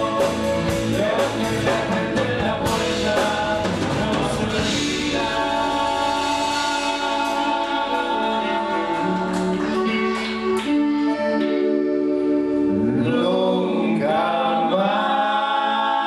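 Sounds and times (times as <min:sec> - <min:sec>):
men singing together: 0:00.0 - 0:10.1, 0:12.9 - 0:16.0
deep bass: 0:00.0 - 0:10.9
guitars: 0:00.0 - 0:14.7.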